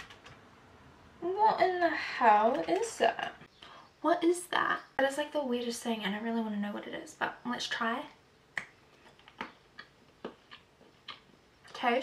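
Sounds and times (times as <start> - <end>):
person chewing: 9.2 - 11.3
wet mouth clicks: 9.4 - 11.3.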